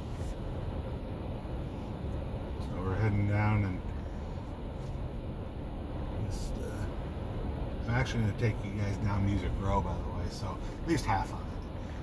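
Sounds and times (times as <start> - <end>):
road and tyre noise in car cabin: 0.0 - 12.0.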